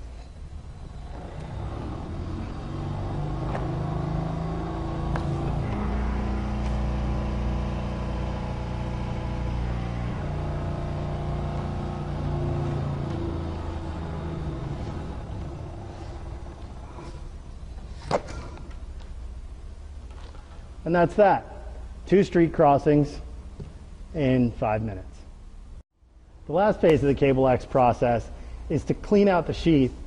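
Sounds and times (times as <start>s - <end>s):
high-pressure pump humming: 0.7s - 17.8s.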